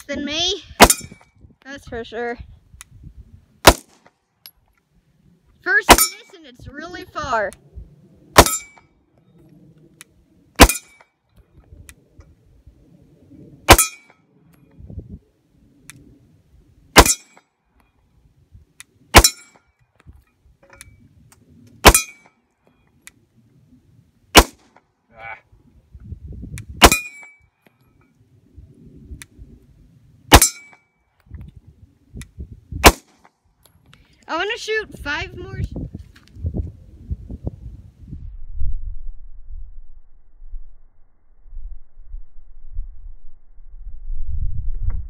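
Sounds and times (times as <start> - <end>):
pistol shots: 0.8 - 1.2, 3.6 - 4.1, 8.4 - 8.7, 10.6 - 10.9, 13.7 - 14.1, 17.0 - 17.3, 19.1 - 19.4, 21.8 - 22.2, 24.3 - 24.8, 26.8 - 27.2, 30.3 - 30.7, 32.8 - 33.2
metallic ring of steel target: 0.8 - 1.3, 5.9 - 6.4, 8.4 - 8.8, 10.6 - 11.1, 13.7 - 14.2, 17.0 - 17.4, 19.1 - 19.7, 21.8 - 22.4, 26.8 - 27.5, 30.3 - 30.9.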